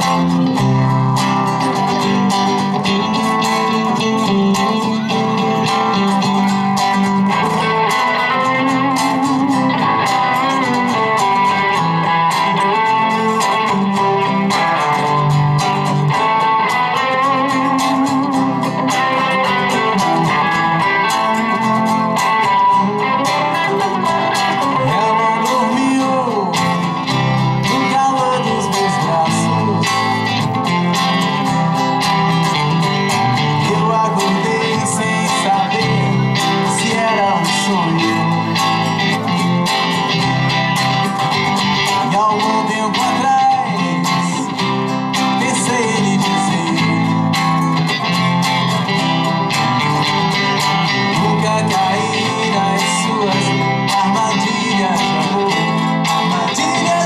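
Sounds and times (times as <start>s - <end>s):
acoustic guitar playing: 0.0s - 57.0s
electric guitar playing: 0.0s - 57.0s.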